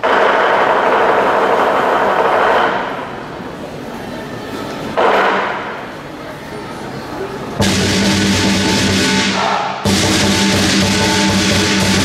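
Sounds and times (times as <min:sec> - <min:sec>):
cymbals clashing: 0:07.6 - 0:12.0.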